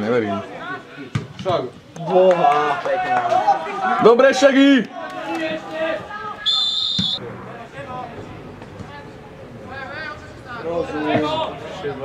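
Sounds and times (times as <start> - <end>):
referee's whistle blast: 6.4 - 7.2.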